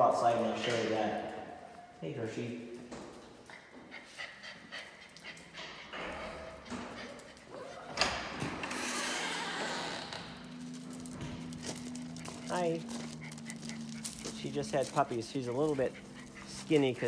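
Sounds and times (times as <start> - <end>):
footsteps in a barn: 0.3 - 17.0.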